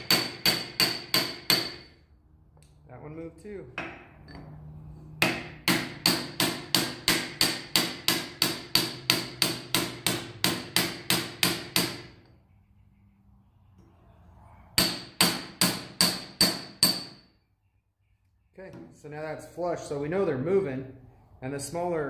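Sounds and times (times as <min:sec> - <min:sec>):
hammer tapping metal punch: 0:00.0 - 0:01.9, 0:05.2 - 0:12.3, 0:14.8 - 0:17.2.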